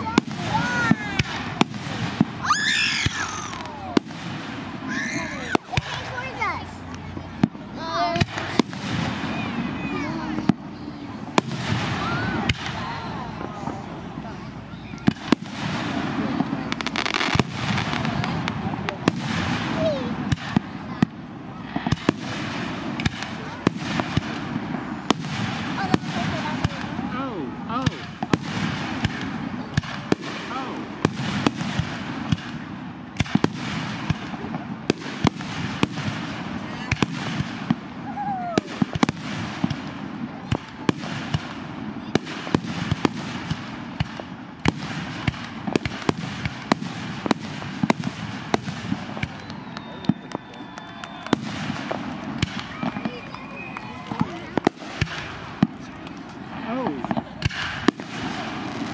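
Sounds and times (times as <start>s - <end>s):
fireworks bangs and crackles: 0.0s - 58.9s
onlookers talking: 0.0s - 58.9s.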